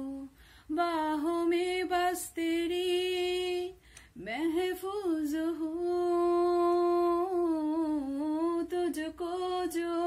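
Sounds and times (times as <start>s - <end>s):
woman singing unaccompanied: 0.0s - 10.0s.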